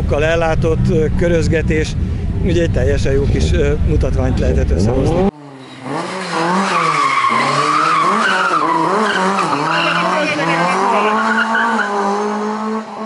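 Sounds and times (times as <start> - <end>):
car engine revving: 0.0 - 13.0
tyres squealing: 6.7 - 11.9.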